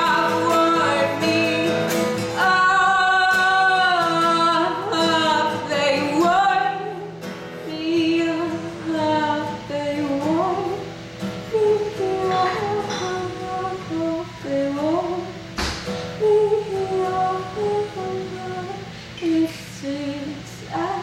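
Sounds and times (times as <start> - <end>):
strummed acoustic guitar: 0.0 - 21.0
woman singing: 0.0 - 21.0.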